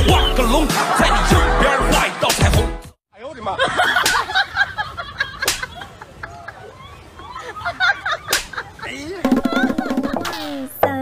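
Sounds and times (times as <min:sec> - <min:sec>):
hand slapping costume head: 0:05.4 - 0:05.7, 0:08.3 - 0:08.5.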